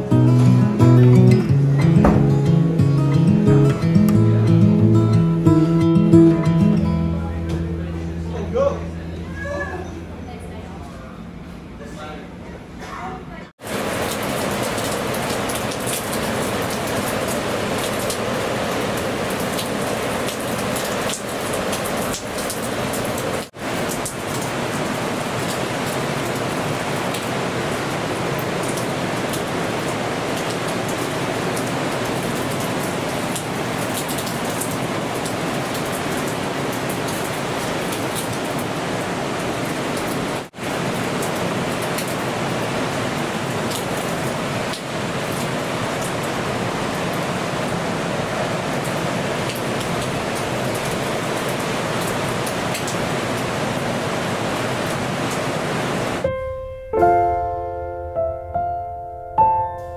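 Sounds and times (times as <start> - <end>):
wind: 0.0 - 57.4.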